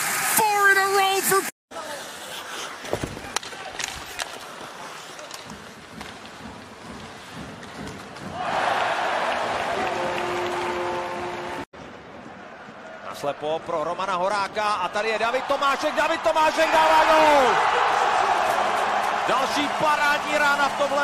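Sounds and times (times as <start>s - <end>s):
crowd cheering: 8.3s - 11.7s, 14.9s - 21.0s.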